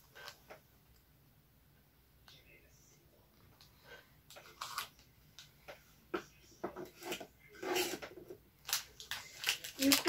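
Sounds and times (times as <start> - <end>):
foil wrapper crinkling: 8.6 - 10.0.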